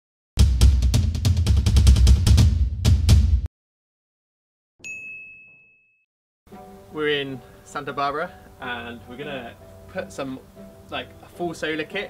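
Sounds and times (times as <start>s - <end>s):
high bell-like ding: 4.8s - 6.1s.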